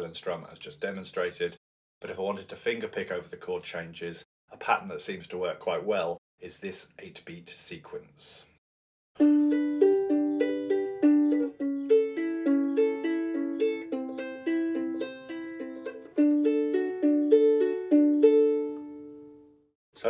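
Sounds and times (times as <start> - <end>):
ukulele fingerpicked: 9.2 - 19.2.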